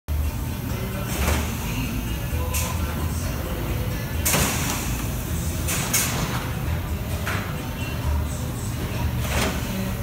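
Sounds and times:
faint background music: 0:00.1 - 0:10.0
machine rumble: 0:00.1 - 0:10.0.

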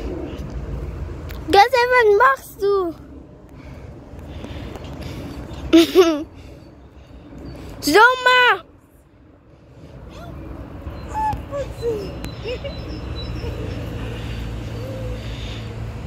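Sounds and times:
steady low rumble: 0:00.0 - 0:07.8.

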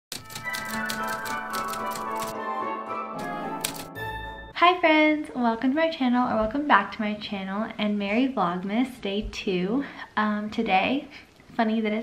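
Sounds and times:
typewriter key clicks: 0:00.1 - 0:02.3, 0:03.6 - 0:03.9
intro music: 0:00.1 - 0:04.6.

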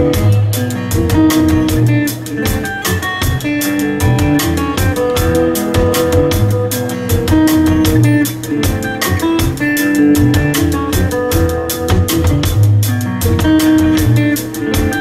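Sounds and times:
acoustic guitar: 0:00.0 - 0:15.0
drum kit beat: 0:00.0 - 0:15.0.

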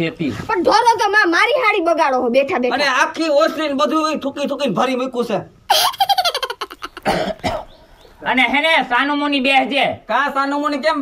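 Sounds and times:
person coughing: 0:07.0 - 0:07.8.

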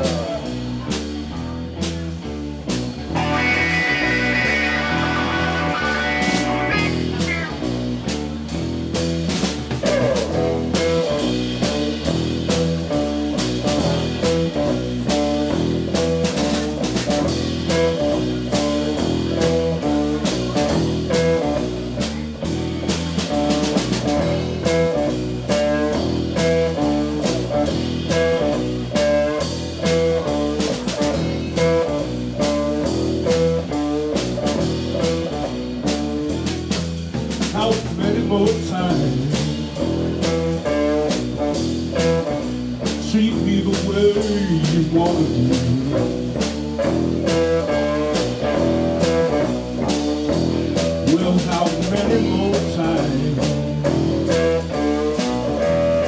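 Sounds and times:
bass guitar: 0:00.0 - 0:56.0
drum kit beat: 0:00.0 - 0:56.0
electric guitars: 0:00.0 - 0:56.0.

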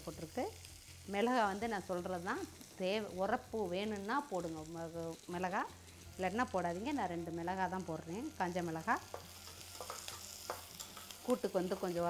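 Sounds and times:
onions sizzling in oil: 0:00.0 - 0:12.0
woman's voice: 0:01.1 - 0:09.0, 0:11.3 - 0:12.0
metal spatula clinking on pot: 0:09.1 - 0:11.2.

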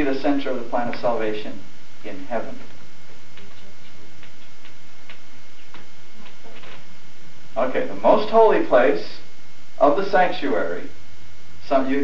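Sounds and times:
steady hiss: 0:00.0 - 0:12.0
faint irregular clicks: 0:02.6 - 0:06.8.

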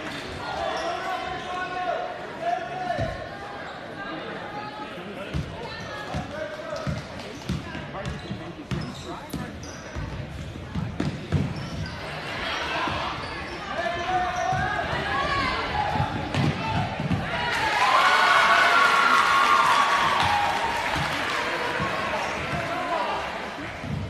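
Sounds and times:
spectators' voices and shouts: 0:10.8 - 0:24.0.

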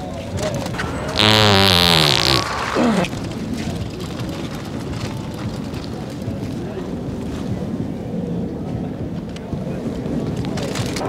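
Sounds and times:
faint indistinct voices: 0:00.0 - 0:11.0
wind rumble on microphone: 0:03.1 - 0:11.0.

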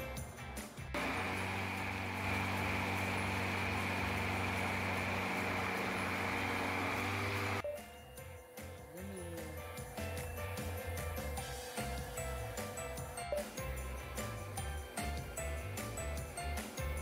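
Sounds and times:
blender motor running: 0:01.0 - 0:07.6.

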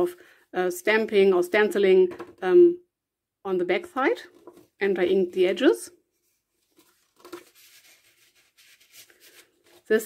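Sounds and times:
soft scrapes of pages: 0:06.1 - 0:10.0
pages rustling: 0:06.2 - 0:10.0.

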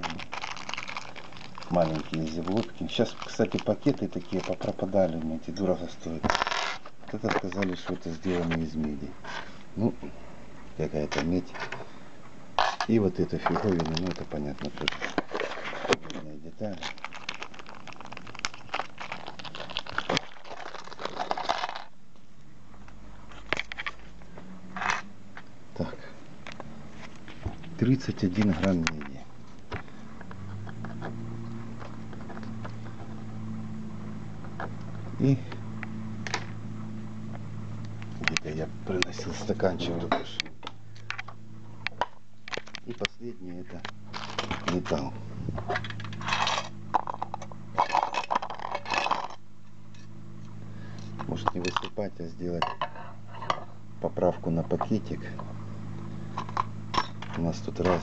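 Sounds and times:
small metal parts clattering in bowl: 0:00.0 - 0:04.6, 0:16.8 - 0:21.9, 0:44.1 - 0:44.8, 0:45.7 - 0:49.4
low electrical hum: 0:00.0 - 0:58.0.

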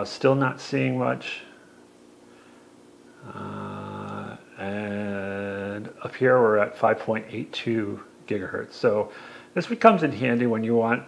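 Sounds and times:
man humming: 0:03.2 - 0:06.0.

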